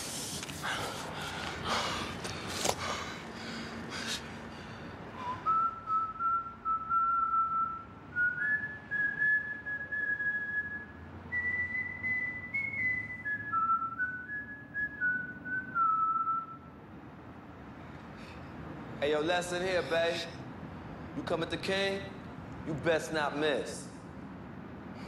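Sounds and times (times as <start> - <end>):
man whistling a slow tune: 5.2 - 16.8.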